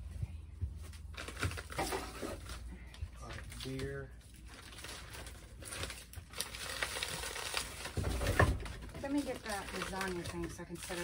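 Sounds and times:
plastic bags crinkling: 1.0 - 11.0.

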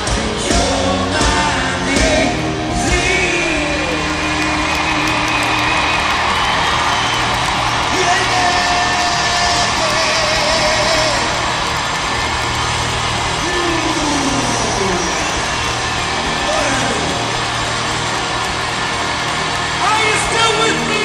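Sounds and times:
crowd noise: 0.0 - 21.0
low rock band sound: 0.0 - 21.0.

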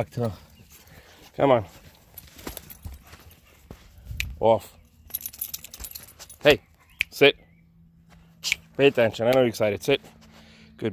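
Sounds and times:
dog collar tag jingling: 2.0 - 3.5, 4.9 - 6.7.

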